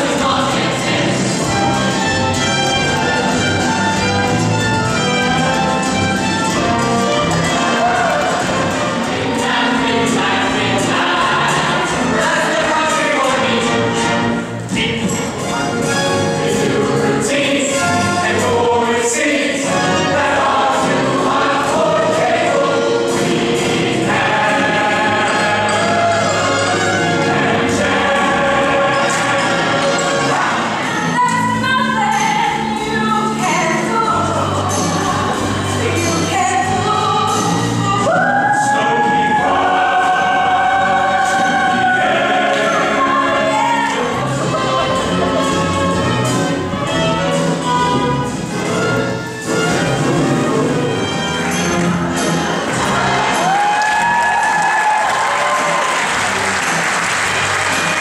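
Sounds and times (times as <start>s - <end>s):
choir: 0.0s - 2.8s, 6.8s - 15.0s, 16.1s - 46.5s, 49.7s - 58.0s
ensemble singing in chorus: 0.0s - 3.7s, 6.7s - 31.3s, 32.6s - 58.0s
instrumental accompaniment with beat: 0.0s - 38.3s, 39.0s - 58.0s.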